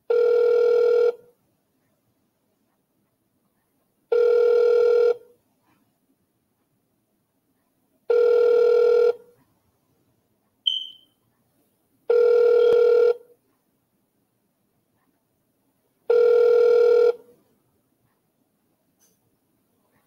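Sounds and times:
telephone ringing tone: 0:00.1 - 0:01.2, 0:04.1 - 0:05.3, 0:08.1 - 0:09.2, 0:12.1 - 0:13.3, 0:16.1 - 0:17.3
brief high chirp: 0:10.7 - 0:11.2.

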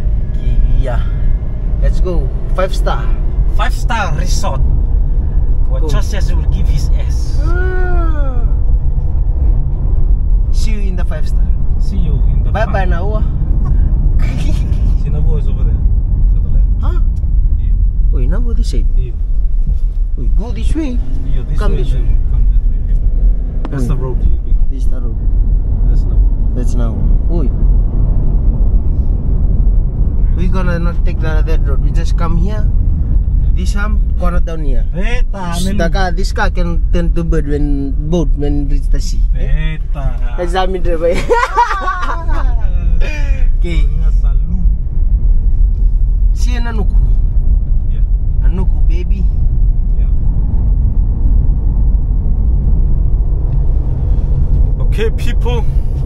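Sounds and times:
car cabin rumble: 0:00.0 - 0:56.0
people talking: 0:00.4 - 0:01.2, 0:01.8 - 0:04.6, 0:05.7 - 0:08.5, 0:10.5 - 0:19.2, 0:20.2 - 0:23.0, 0:23.7 - 0:25.2, 0:25.8 - 0:27.5, 0:30.3 - 0:32.7, 0:33.5 - 0:44.7, 0:46.4 - 0:47.1, 0:47.9 - 0:49.3, 0:54.8 - 0:55.8.

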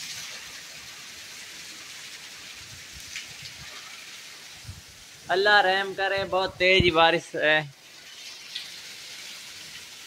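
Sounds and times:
heavy rain hissing: 0:00.0 - 0:10.0.

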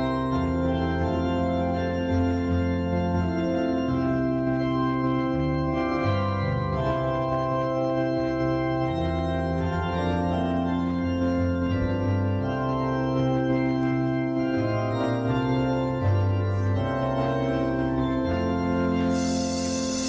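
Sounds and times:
organ chords on keyboard: 0:00.0 - 0:20.0.

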